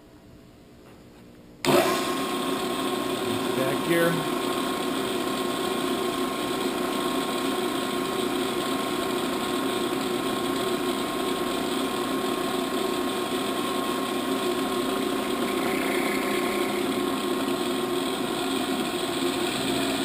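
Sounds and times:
milling machine whirring: 1.6s - 20.0s.

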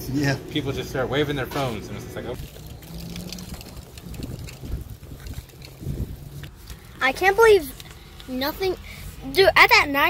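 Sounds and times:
wind buffeting microphone: 2.4s - 7.1s.

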